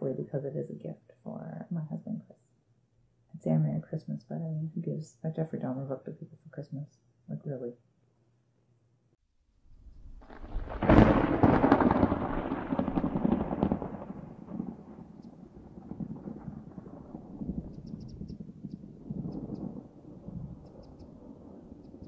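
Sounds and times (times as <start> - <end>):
thunder rumbling: 9.8 - 22.0.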